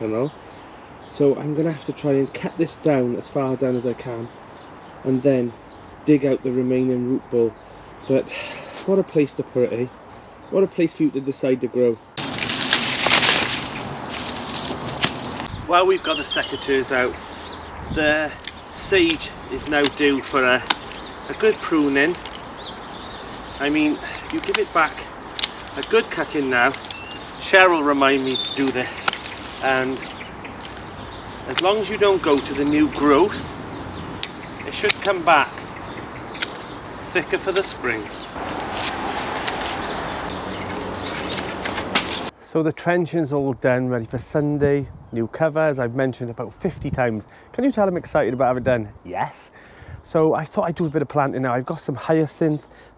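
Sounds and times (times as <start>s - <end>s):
outdoor background noise: 0.0s - 52.9s
plastic sheeting rustling: 12.2s - 15.1s
bramble stems rustling: 12.2s - 15.5s, 18.1s - 42.3s.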